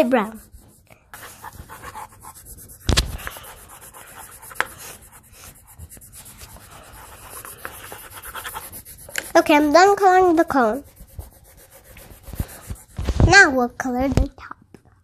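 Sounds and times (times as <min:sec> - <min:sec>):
pencils scratching on paper: 0:00.0 - 0:14.3.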